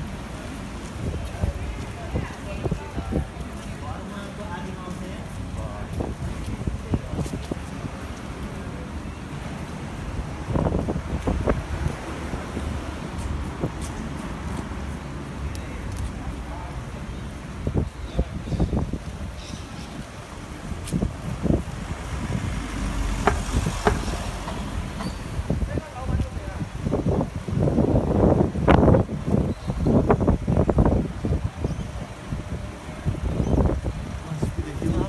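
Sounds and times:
street traffic: 0:00.0 - 0:35.0
vehicle engine rumble: 0:00.0 - 0:35.0
wind buffeting microphone: 0:00.0 - 0:35.0
short knocks: 0:23.2 - 0:25.2.

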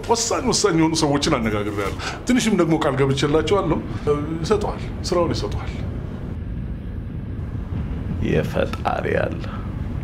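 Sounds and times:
wind buffeting microphone: 0:01.9 - 0:10.0.

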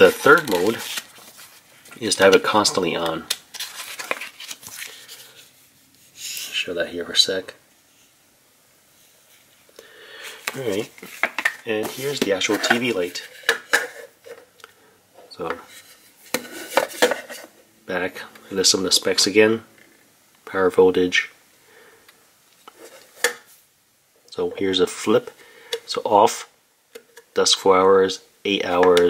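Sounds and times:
paper pages rustling: 0:00.0 - 0:06.6, 0:10.2 - 0:13.5.

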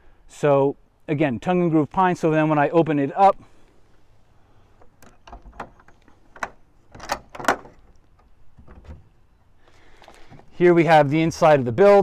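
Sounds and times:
door latch clicks: 0:05.0 - 0:07.8.

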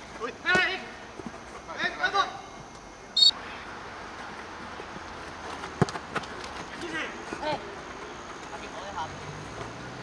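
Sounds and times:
referee's whistle blast: 0:03.2 - 0:03.4.

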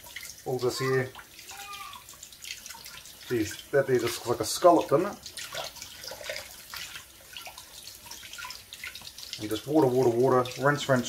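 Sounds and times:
tap water splashing over hands: 0:00.0 - 0:11.0.

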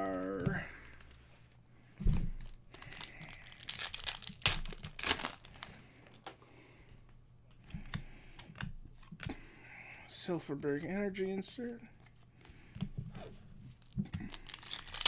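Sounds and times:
foil wrapper crinkling and tearing: 0:02.4 - 0:06.4, 0:13.7 - 0:15.0.

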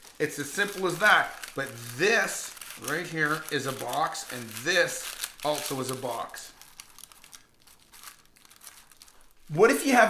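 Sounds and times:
thin paper crinkling: 0:00.0 - 0:10.0.

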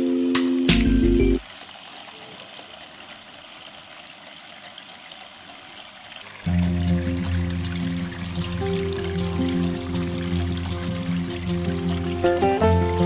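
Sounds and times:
background music: 0:00.0 - 0:01.4, 0:06.5 - 0:13.0
fountain water trickling: 0:00.0 - 0:13.0.

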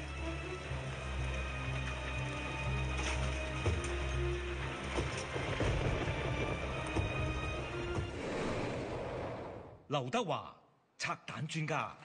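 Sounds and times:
low music drone: 0:00.0 - 0:08.1
rattling crackling noise: 0:02.7 - 0:09.6.

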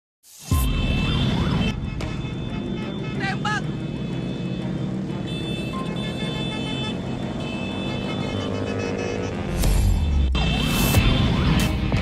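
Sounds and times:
motorbike engines rumbling: 0:01.9 - 0:11.4.

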